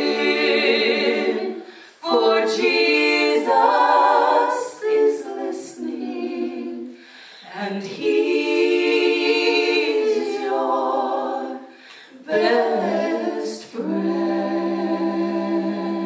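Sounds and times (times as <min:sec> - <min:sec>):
women singing a cappella in harmony: 0:00.0 - 0:16.0.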